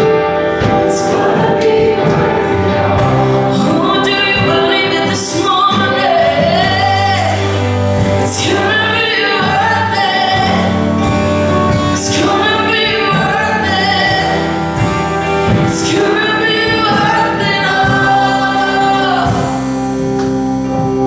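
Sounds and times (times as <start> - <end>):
person singing: 0.0 - 19.7
bass guitar: 0.0 - 21.0
electric guitar: 0.0 - 21.0
keyboard: 0.0 - 21.0
worship band playing: 0.0 - 21.0.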